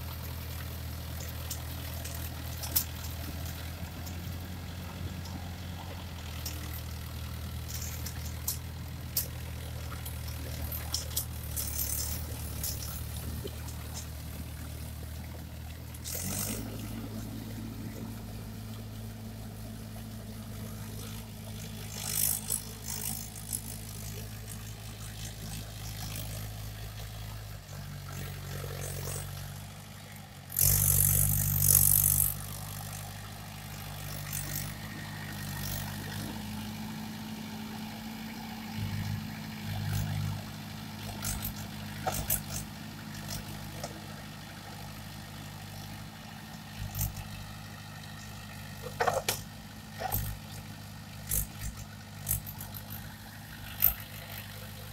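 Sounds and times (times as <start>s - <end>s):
tractor engine running: 0.0s - 54.9s.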